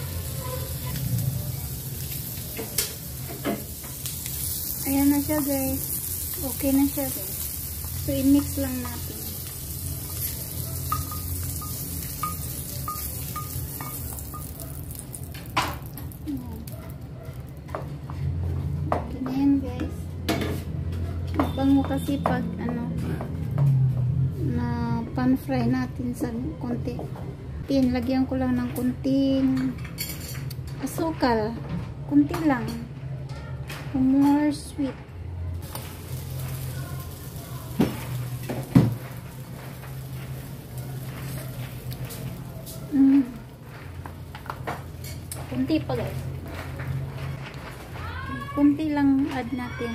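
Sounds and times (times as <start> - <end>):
faint sizzle: 0.0 - 16.8, 35.6 - 46.8.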